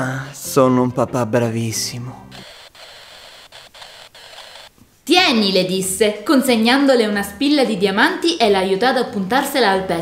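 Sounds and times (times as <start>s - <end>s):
room noise hiss: 2.2s - 7.5s.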